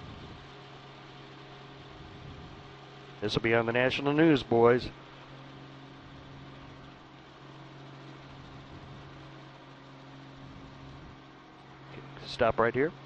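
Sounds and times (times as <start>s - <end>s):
low mechanical drone: 0.0s - 13.0s.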